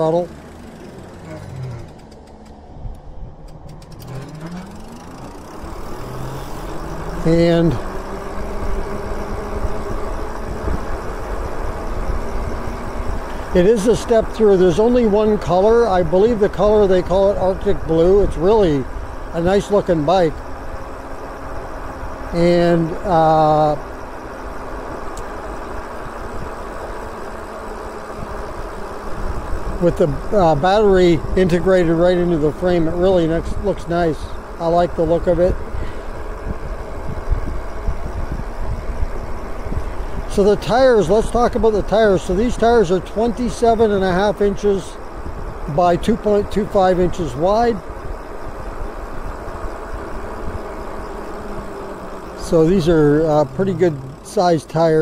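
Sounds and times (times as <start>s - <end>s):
electric motor whine: 0.0s - 55.0s
wind and road rumble: 0.0s - 55.0s.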